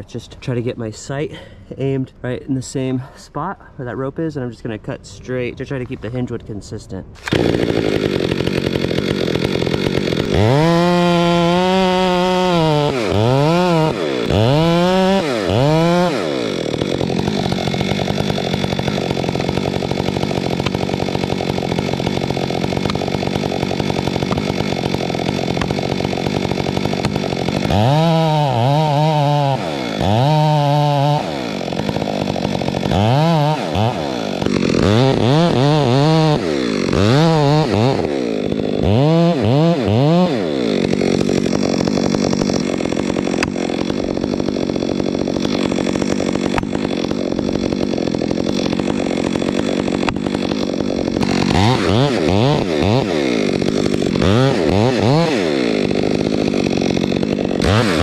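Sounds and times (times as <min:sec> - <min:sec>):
chainsaw cutting tree trunk: 0:07.2 - 0:58.0.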